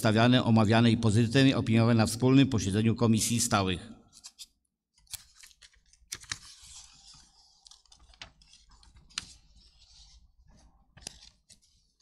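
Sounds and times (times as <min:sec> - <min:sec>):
paper rustling: 0:05.1 - 0:12.0.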